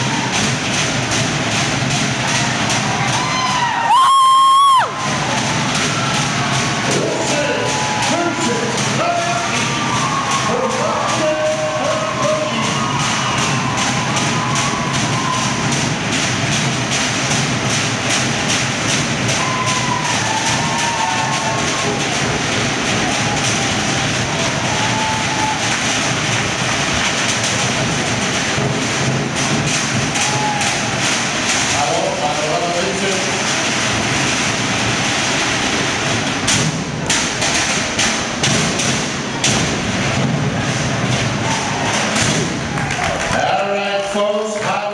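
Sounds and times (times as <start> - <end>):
crowd cheering and calling: 0.0 - 44.9
fast drumming: 0.0 - 44.9.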